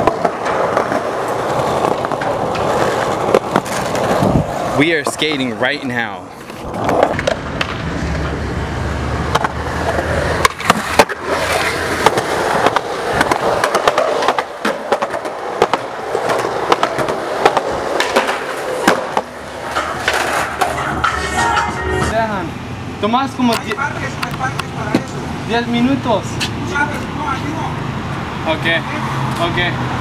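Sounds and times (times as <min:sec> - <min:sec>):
skateboard clacking on ground: 0:00.0 - 0:08.4, 0:09.2 - 0:22.1
skateboard wheels rolling on concrete: 0:00.0 - 0:30.0.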